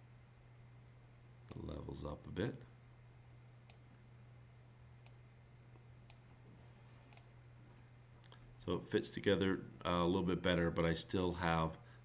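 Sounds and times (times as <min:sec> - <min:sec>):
faint steady hum: 0:00.0 - 0:12.0
computer mouse clicks: 0:03.6 - 0:03.8, 0:05.0 - 0:05.2, 0:06.0 - 0:06.3, 0:07.1 - 0:07.3.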